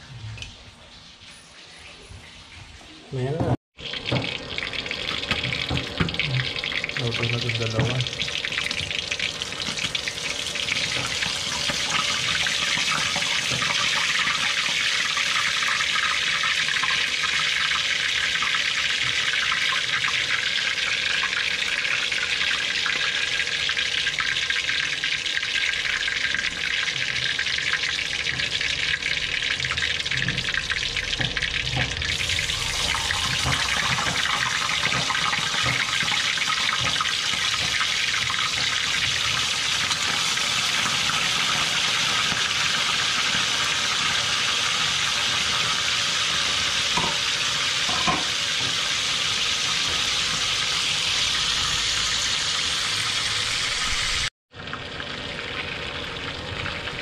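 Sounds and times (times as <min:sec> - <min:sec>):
fish frying in hot oil: 0:03.8 - 0:57.0.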